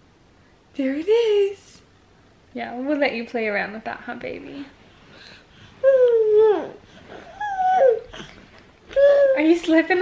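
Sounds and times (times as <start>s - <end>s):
toddler making wordless calls: 5.8s - 8.2s, 8.9s - 9.6s.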